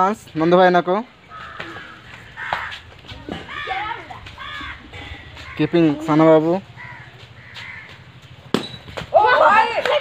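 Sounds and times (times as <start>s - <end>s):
faint bird calls: 1.2s - 6.0s, 6.7s - 8.9s.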